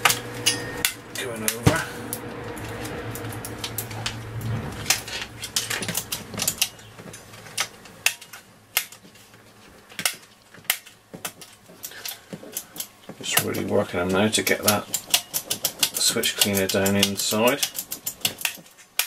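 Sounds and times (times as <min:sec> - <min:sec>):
man talking: 0:01.2 - 0:02.0, 0:13.2 - 0:14.8.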